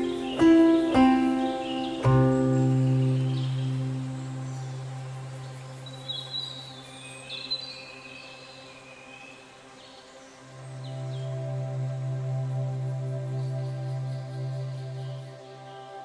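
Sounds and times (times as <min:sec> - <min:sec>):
soft ambient music: 0:00.0 - 0:16.0.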